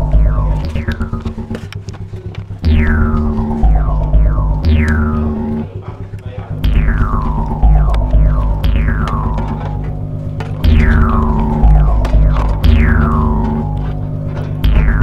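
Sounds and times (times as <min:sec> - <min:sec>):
jaw harp buzzing drone: 0:00.0 - 0:15.0.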